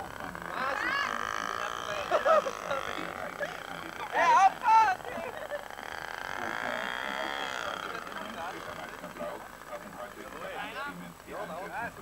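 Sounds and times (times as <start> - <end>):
model airplane engine drone: 0.0 - 12.0.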